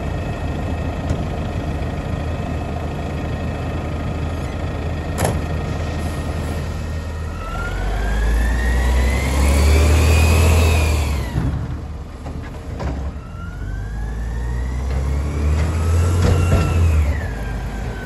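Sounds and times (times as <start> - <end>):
truck engine idling: 0.0 - 8.2
rising engine whine: 0.0 - 12.2, 12.9 - 18.0.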